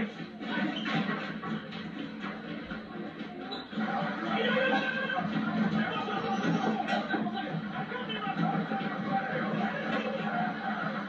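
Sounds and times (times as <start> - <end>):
film music from television speakers: 0.0 - 11.0.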